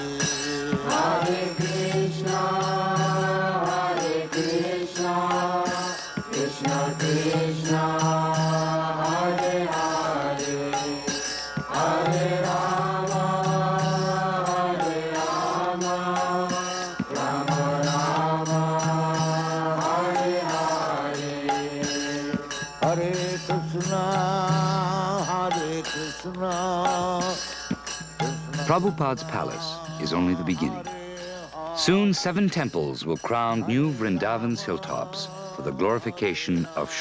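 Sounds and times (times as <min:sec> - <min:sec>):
devotional chanting: 0:00.0 - 0:37.0.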